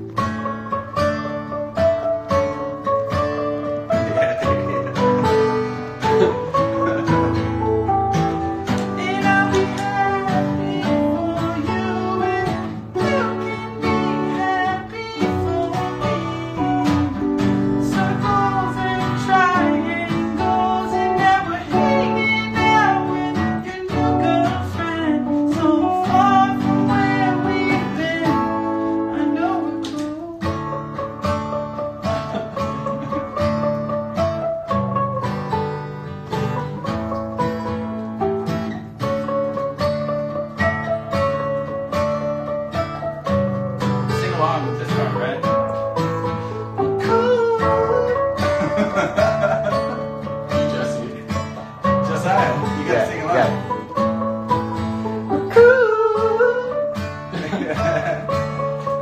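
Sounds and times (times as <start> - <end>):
clean electric guitar: 0.0 - 59.0
strummed acoustic guitar: 0.0 - 59.0
man singing: 8.8 - 30.7, 47.0 - 49.9, 55.3 - 58.2.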